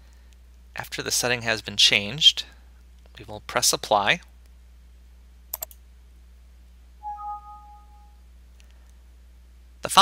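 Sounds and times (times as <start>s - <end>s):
two-tone alert chime: 7.0s - 8.1s.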